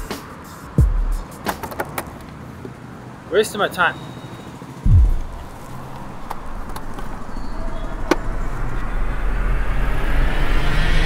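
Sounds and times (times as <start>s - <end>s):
low thud: 4.9s - 5.6s
whoosh of noise: 4.9s - 6.6s.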